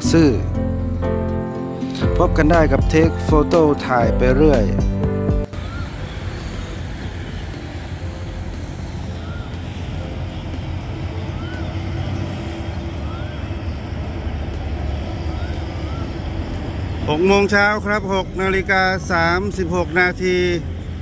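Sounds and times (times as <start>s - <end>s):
diesel locomotive engine rumble: 0.0s - 21.0s
held engine tone: 0.0s - 21.0s.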